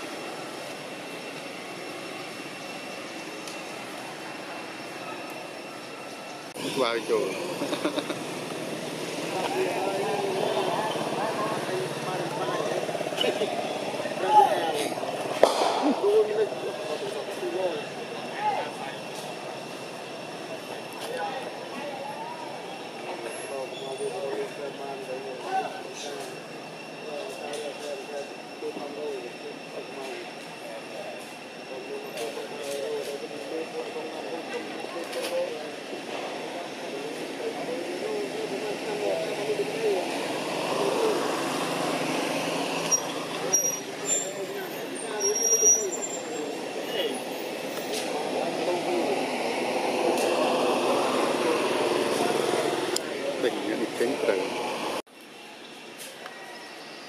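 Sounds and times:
distant voices chattering: 0:00.0 - 0:57.0.

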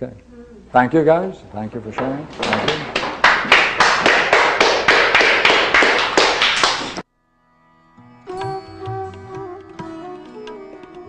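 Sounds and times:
people applauding: 0:02.3 - 0:07.0.

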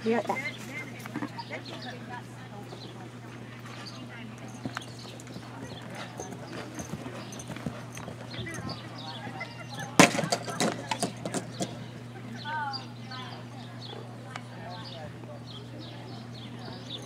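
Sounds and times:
horse hooves cantering on dirt: 0:00.0 - 0:12.1
horse landing thuds: 0:09.8 - 0:11.8.

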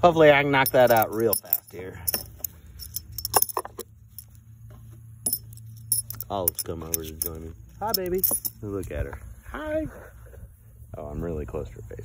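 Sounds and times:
metal washers clinking: 0:00.2 - 0:09.0.

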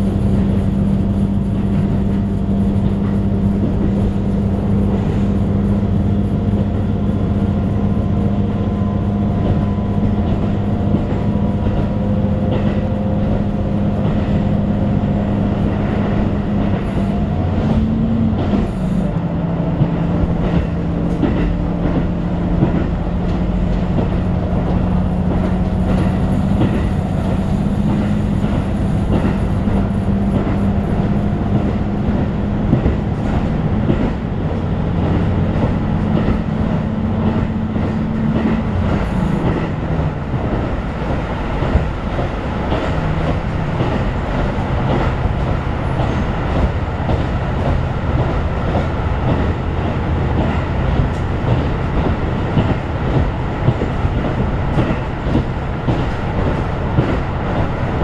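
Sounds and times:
railcar engine drone: 0:00.0 - 0:58.0.

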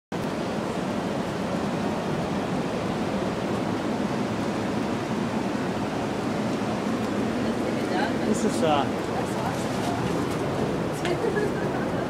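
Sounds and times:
waterfall rushing: 0:00.2 - 0:12.0.

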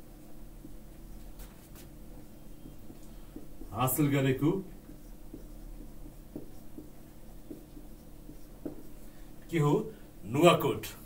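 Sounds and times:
steady low hum: 0:00.0 - 0:11.0
marker pen writing on whiteboard: 0:00.1 - 0:09.7.

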